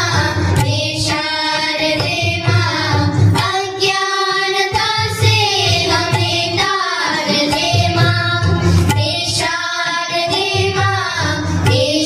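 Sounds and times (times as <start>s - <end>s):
child singing: 0.0s - 12.0s.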